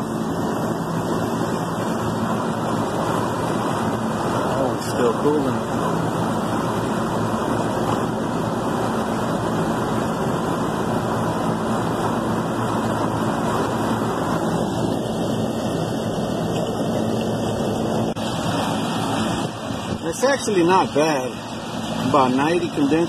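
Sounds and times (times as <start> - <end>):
air conditioner fan and compressor hum: 0.0 - 23.0.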